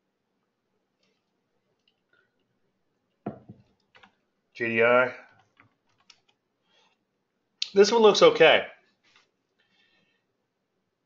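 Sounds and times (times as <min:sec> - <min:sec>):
quiet keyboard keystrokes: 0:03.7 - 0:04.2.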